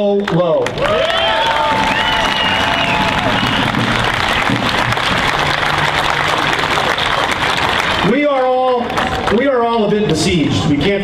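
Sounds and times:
crowd applauding and cheering: 0.0s - 10.1s.

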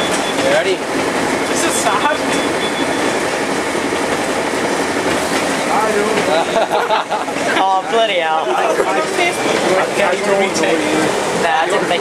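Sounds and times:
train carriage rumble and rattle: 0.0s - 12.0s.

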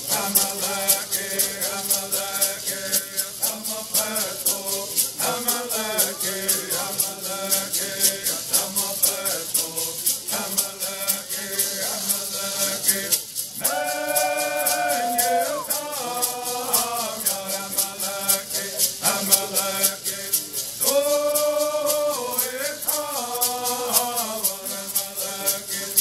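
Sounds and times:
gourd rattles shaking: 0.0s - 26.0s
person singing: 0.0s - 26.0s.

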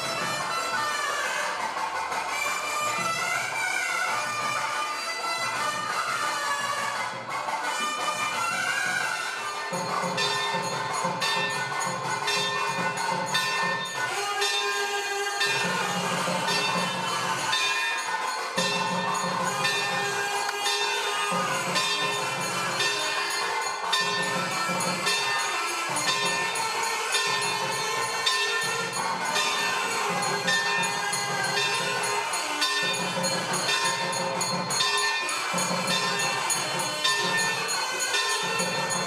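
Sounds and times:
brass hand bell: 0.0s - 1.4s, 7.7s - 39.0s
temple bells ringing: 8.7s - 39.0s.

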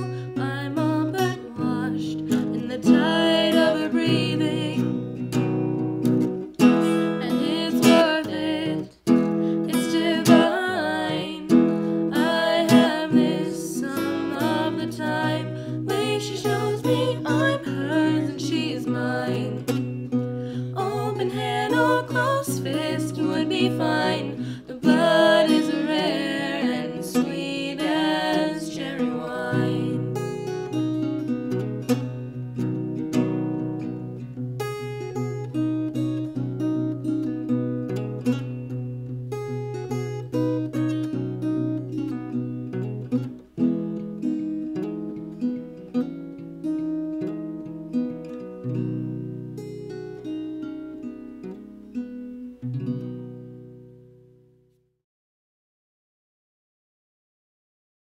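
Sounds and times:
acoustic guitar picked notes: 0.0s - 54.7s.

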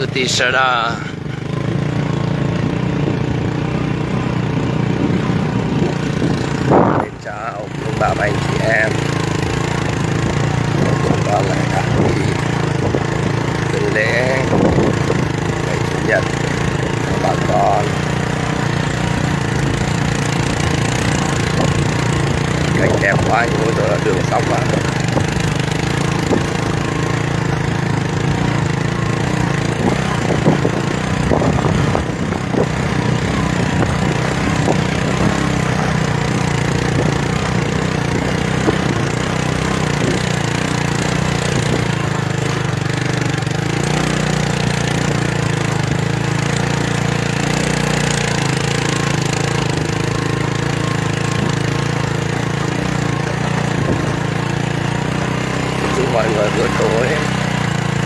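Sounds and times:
vehicle engine droning: 0.0s - 58.0s.

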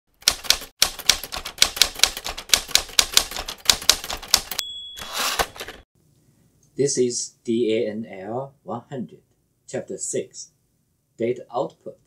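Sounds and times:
typewriter keys clacking: 0.2s - 5.8s
typewriter carriage bell ding: 4.4s - 5.8s
typewriter carriage sliding back: 5.0s - 5.8s.

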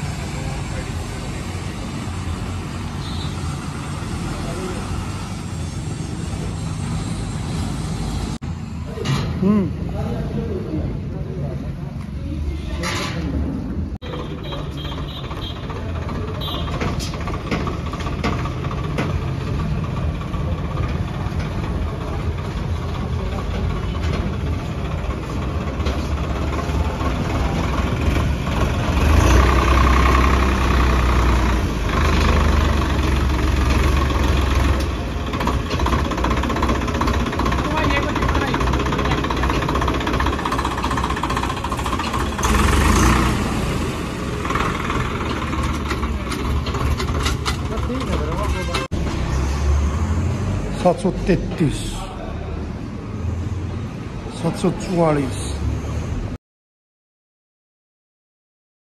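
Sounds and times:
tractor diesel engine running: 13.6s - 52.2s.

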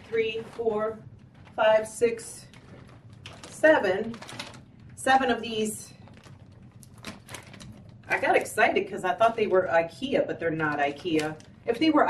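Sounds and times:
plastic bag crinkling: 0.0s - 9.6s, 10.6s - 12.0s.

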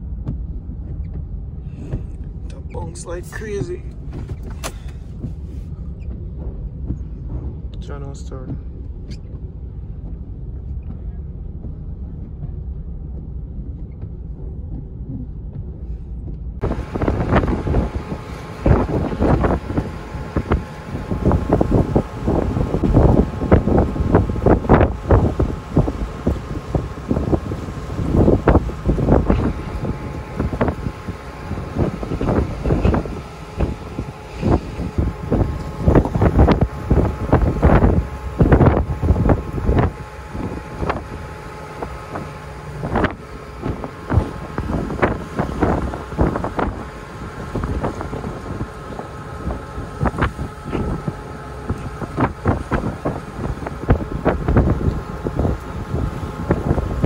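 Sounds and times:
faint engine drone: 0.0s - 57.0s
low rumble inside vehicle: 0.0s - 57.0s
wind buffeting microphone: 0.0s - 57.0s.

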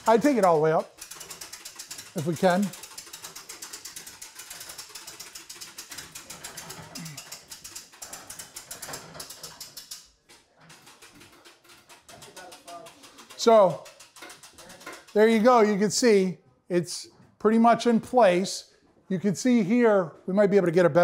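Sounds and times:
hand-cranked winch ratcheting: 0.0s - 16.2s.

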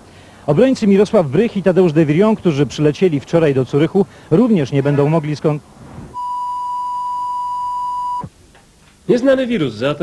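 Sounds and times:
electronic censor bleep: 6.2s - 8.3s.

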